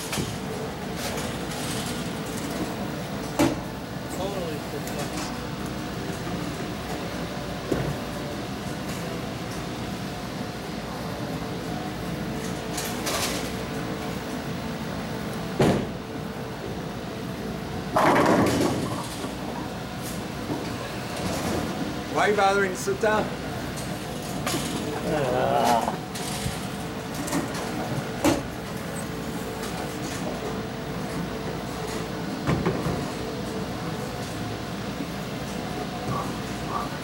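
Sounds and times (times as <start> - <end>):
machinery hum: 0.0 - 37.0.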